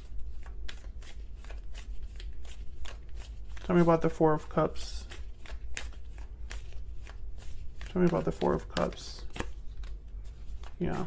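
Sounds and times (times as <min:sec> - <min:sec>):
cards being shuffled: 0:00.0 - 0:11.0
card snaps: 0:07.8 - 0:10.0.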